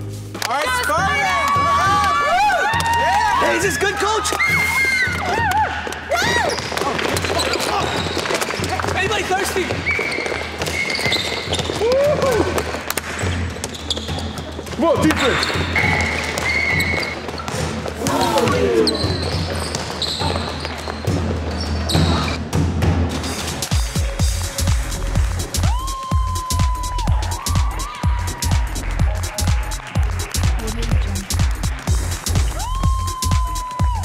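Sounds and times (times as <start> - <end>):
background music: 0.0 - 34.0
beat music with synth melody: 22.4 - 34.0.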